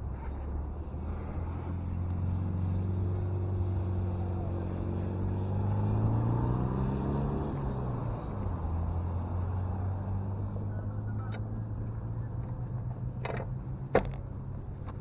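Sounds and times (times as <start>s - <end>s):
vehicle driving past: 0.0s - 13.1s.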